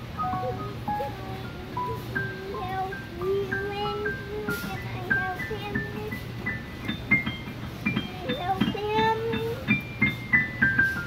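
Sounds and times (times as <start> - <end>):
digital piano notes: 0.0 - 11.0.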